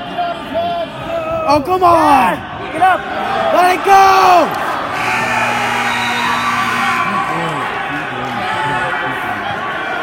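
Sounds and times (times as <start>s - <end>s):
spectators shouting and whooping: 1.1s - 10.0s
crowd hubbub: 2.3s - 10.0s.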